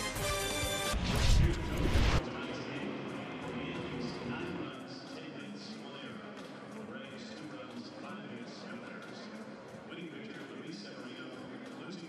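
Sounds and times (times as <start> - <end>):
loud swoosh: 0.8 - 2.2.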